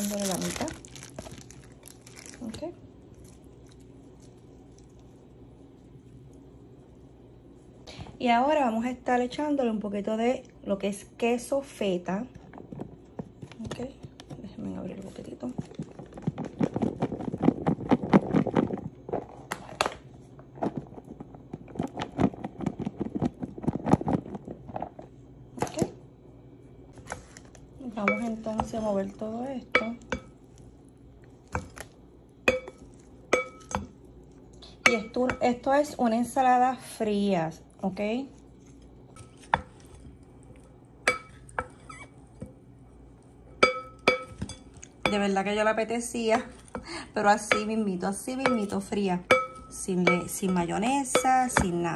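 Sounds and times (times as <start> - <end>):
wooden spoon clinking on bowl: 48.4 - 51.8.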